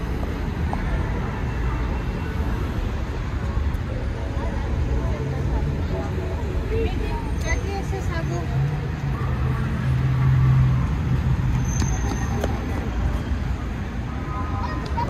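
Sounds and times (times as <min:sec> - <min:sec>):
rumble of passing cars: 0:00.0 - 0:15.0.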